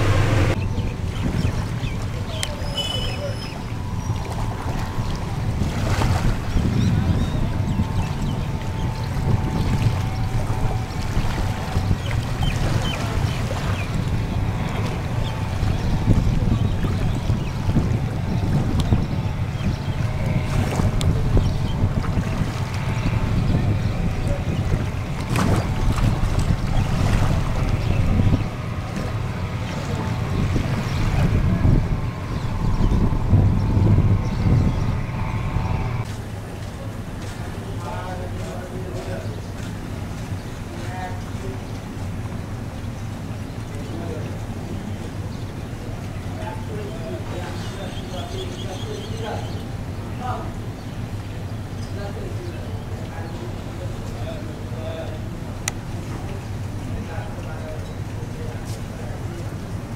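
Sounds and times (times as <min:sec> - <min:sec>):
engine running under load: 0:00.0 - 0:59.9
wind buffeting microphone: 0:00.0 - 0:59.9.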